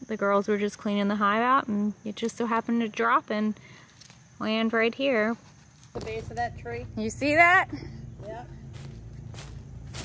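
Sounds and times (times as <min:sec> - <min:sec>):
footsteps on dry leaves: 0:08.6 - 0:10.0.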